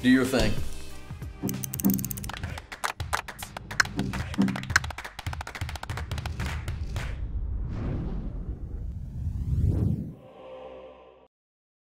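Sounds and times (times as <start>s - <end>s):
fast run of sharp clicks: 1.5s - 6.4s.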